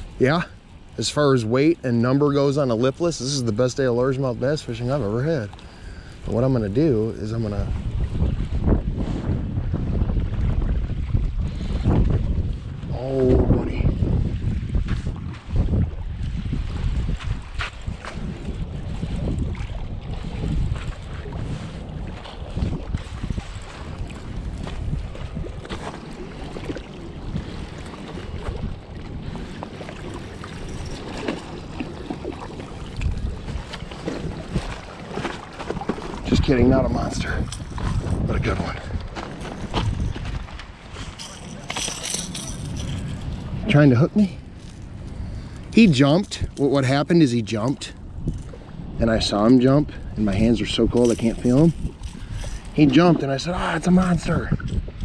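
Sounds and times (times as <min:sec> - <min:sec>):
wind buffeting microphone: 0:00.0 - 0:55.0
handling knocks and rustles: 0:39.0 - 0:43.4.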